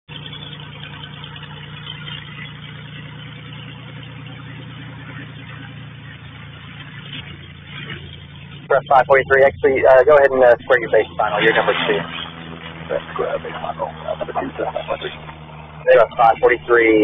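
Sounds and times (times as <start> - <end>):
propeller airplane engine droning: 0.1 - 17.0.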